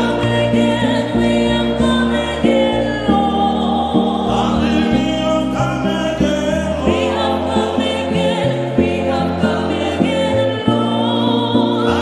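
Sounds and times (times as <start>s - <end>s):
choir singing gospel: 0.0s - 12.0s
instrumental accompaniment with bass: 0.0s - 12.0s.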